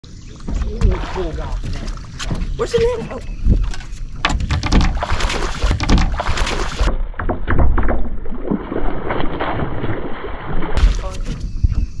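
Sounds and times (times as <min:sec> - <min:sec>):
knocks and thumps on boat deck: 0:00.4 - 0:08.2
wind buffeting microphone: 0:00.5 - 0:05.1, 0:10.8 - 0:12.0
fish splashing at surface: 0:04.8 - 0:07.0, 0:07.8 - 0:11.2.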